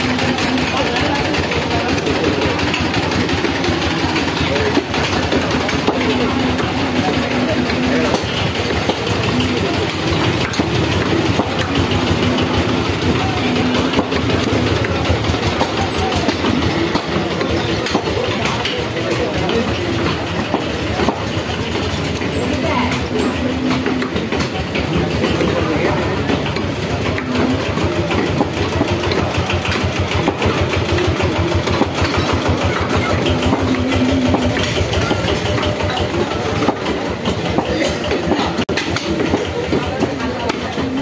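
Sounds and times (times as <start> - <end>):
people talking indistinctly: 0.0 - 41.0.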